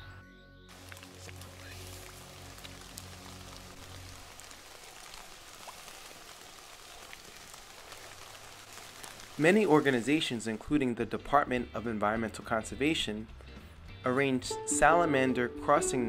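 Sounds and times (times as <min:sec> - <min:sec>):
soft low music notes: 0:00.0 - 0:04.6, 0:09.5 - 0:16.0
rain falling: 0:00.7 - 0:10.8.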